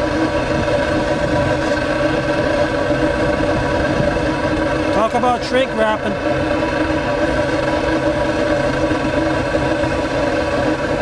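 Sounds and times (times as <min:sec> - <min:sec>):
machine hum through exhaust pipe: 0:00.0 - 0:11.0.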